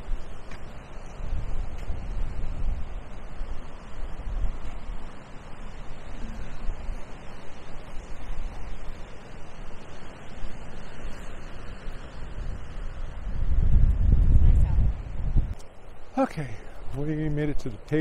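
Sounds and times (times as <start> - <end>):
wind blowing across microphone: 0.0 - 18.0.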